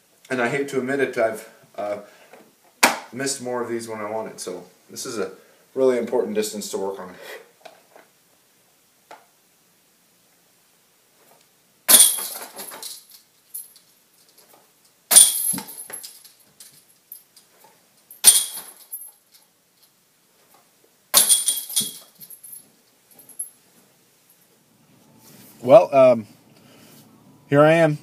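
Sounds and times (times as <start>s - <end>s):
metallic chain jangle: 11.9s - 14.4s, 15.1s - 17.4s, 18.1s - 19.9s, 21.2s - 23.6s.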